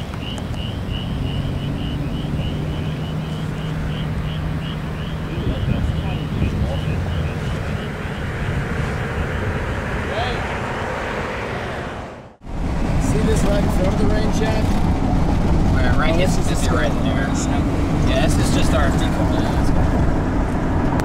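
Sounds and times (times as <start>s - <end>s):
vehicle engine rumble: 0.0s - 21.0s
indistinct voices: 1.2s - 12.2s.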